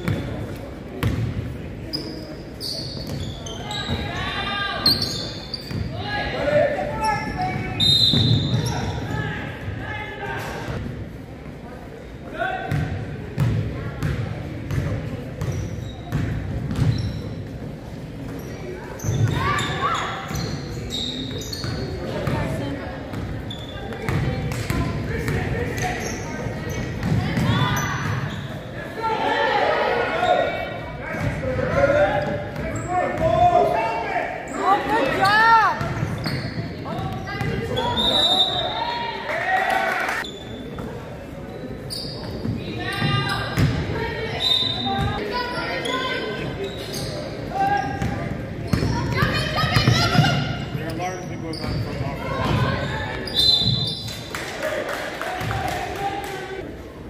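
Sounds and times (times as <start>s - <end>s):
players shouting in echoing gym: 0.0s - 10.8s, 12.2s - 17.7s, 18.4s - 57.0s.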